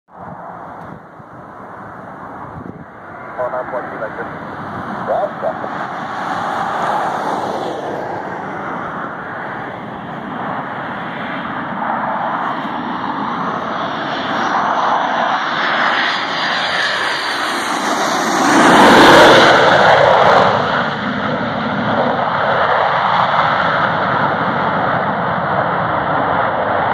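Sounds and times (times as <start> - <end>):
jet engine roar and whine: 0.1 - 26.9.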